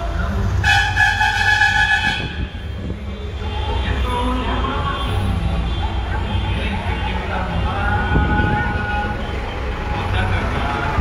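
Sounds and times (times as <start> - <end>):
low rumble of traffic: 0.0 - 11.0
vehicle horn honking: 0.6 - 2.6.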